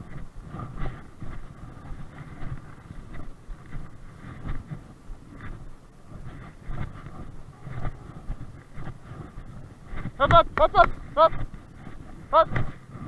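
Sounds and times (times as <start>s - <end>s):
wind and movement rumble: 0.0s - 13.0s.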